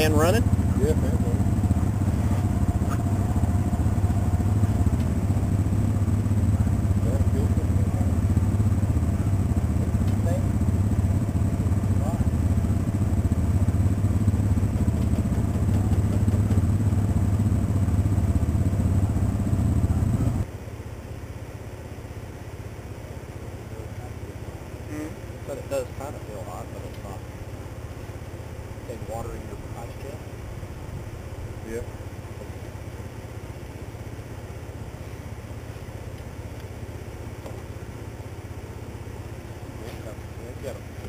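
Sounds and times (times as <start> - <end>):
atv engine idling: 0.0 - 41.0.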